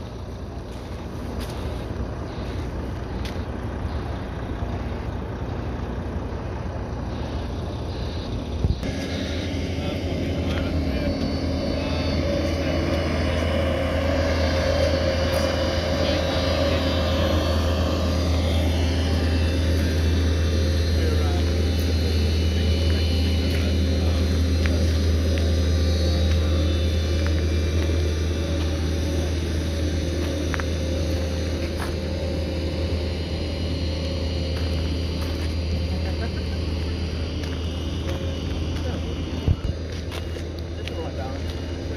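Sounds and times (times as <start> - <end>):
heavy engine humming: 0.0 - 41.9.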